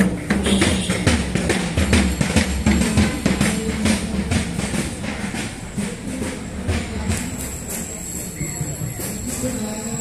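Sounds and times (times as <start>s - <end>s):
drum beaten fast: 0.0s - 10.0s.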